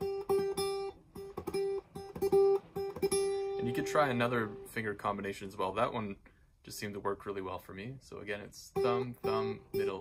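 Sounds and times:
fingerstyle acoustic guitar tremolo: 0:00.0 - 0:04.7.

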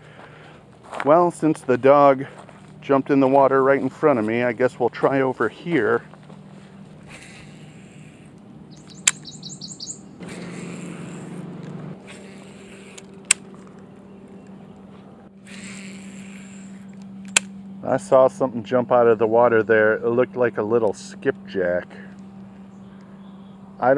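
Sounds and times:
low steady hum: 0:00.0 - 0:23.9
fishing reel clicks: 0:07.1 - 0:11.4, 0:12.0 - 0:13.5, 0:15.4 - 0:17.5
bird chirping: 0:08.7 - 0:11.1, 0:22.6 - 0:23.8.

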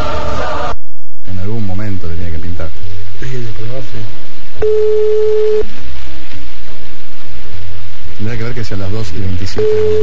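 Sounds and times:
telephone line beep: 0:04.6 - 0:05.6, 0:09.6 - 0:10.0.

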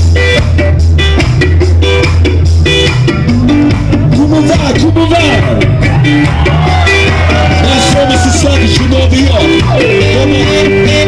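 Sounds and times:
bass: 0:00.0 - 0:11.0
drums: 0:00.0 - 0:11.0.

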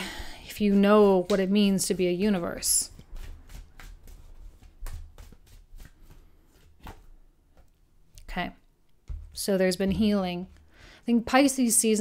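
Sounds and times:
cards being shuffled: 0:00.9 - 0:07.2.

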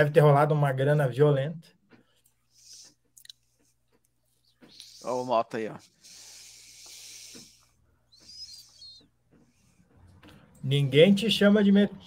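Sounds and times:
breathy hisses into microphone: 0:04.6 - 0:08.2.

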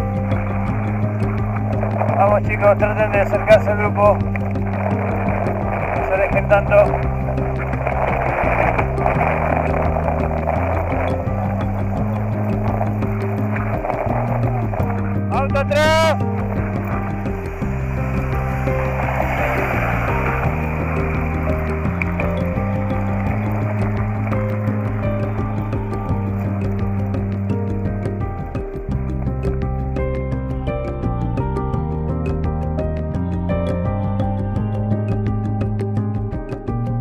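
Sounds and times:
background music with bass line: 0:00.0 - 0:37.0
rising sweep: 0:16.2 - 0:27.1.

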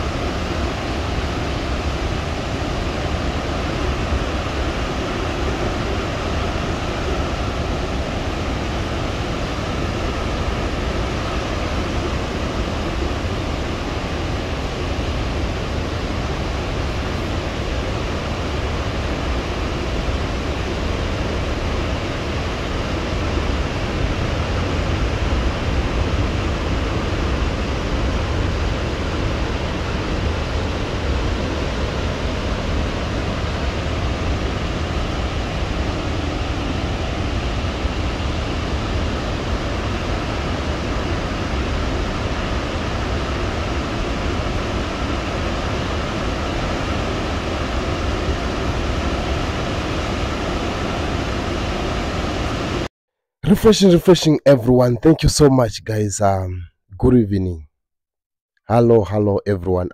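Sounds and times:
waterfall rushing and rumbling: 0:00.0 - 0:52.9.

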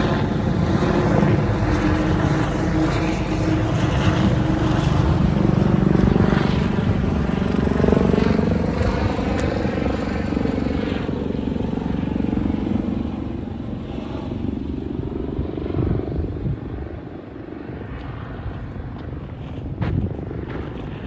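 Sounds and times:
aircraft engine drone overhead: 0:00.0 - 0:21.0.

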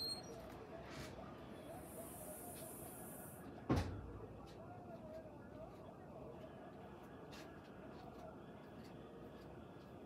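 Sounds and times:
sharp thump: 0:03.7 - 0:04.0.

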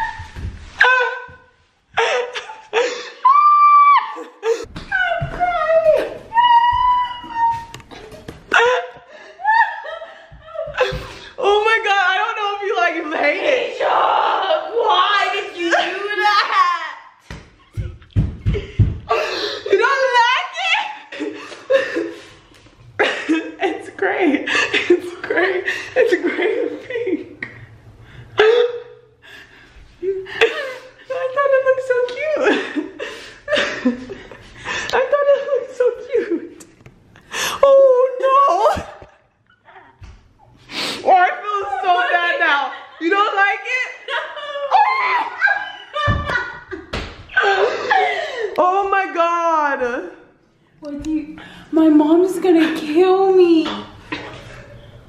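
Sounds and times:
women laughing and shrieking: 0:00.0 - 0:17.2, 0:19.1 - 0:22.3, 0:41.0 - 0:48.6.

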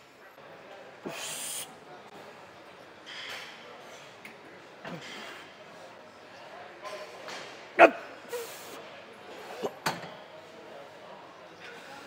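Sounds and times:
gym background noise: 0:00.0 - 0:12.0.

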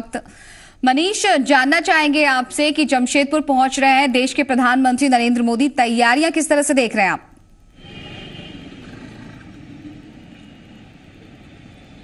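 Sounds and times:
low rumble of road noise: 0:07.6 - 0:12.0
motorbike passing: 0:07.8 - 0:12.0.

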